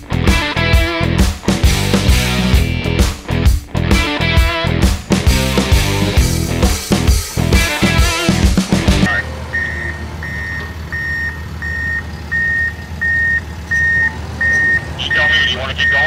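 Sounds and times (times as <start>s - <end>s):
rock music: 0.0s - 9.3s
bulldozer diesel engine running: 0.0s - 16.0s
reversing alarm beeping: 9.1s - 16.0s.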